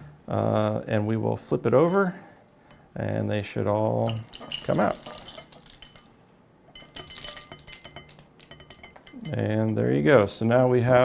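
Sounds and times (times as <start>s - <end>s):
capsules clattering into ceramic dish: 4.0s - 10.3s.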